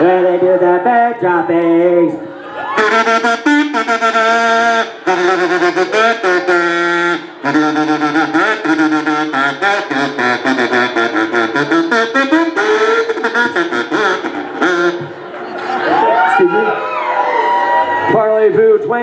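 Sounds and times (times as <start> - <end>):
brass horn melody: 2.7 - 15.3
electric bass: 2.8 - 15.3.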